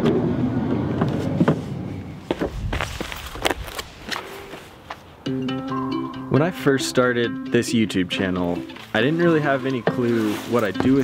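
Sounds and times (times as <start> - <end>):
footsteps on gravel: 2.3 - 5.1, 8.7 - 11.0.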